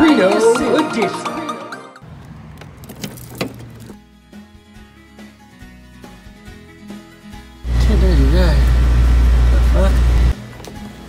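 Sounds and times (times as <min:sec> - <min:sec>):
car keys jangling: 0:02.5 - 0:04.0.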